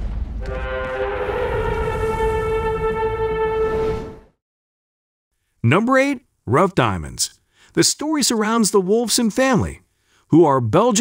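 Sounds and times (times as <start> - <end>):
deep horn-like blast: 0.0 - 4.4.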